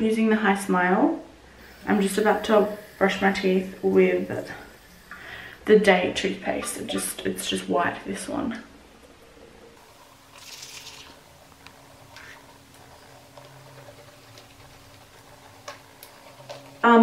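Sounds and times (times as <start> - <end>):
toothbrush scrubbing teeth: 1.6 - 5.5.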